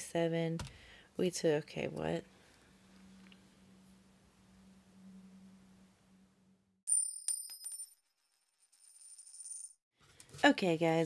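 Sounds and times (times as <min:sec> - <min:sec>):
coins ringing and clinking: 0:06.9 - 0:09.8.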